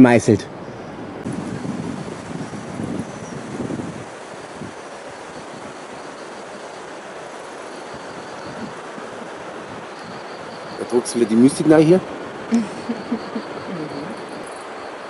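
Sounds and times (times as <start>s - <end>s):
outdoor rushing hiss: 0.0s - 15.0s
wind buffeting microphone: 0.0s - 15.0s.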